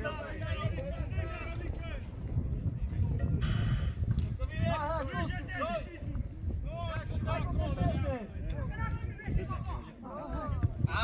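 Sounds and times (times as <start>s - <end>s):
spectators talking and calling out: 0.0s - 11.0s
wind on microphone: 0.0s - 11.0s.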